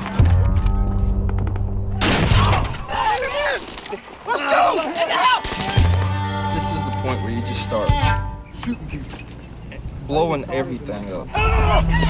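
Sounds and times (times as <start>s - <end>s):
sharp cracks: 0.0s - 4.3s, 4.9s - 6.2s
men shouting: 2.4s - 5.6s, 11.3s - 12.0s.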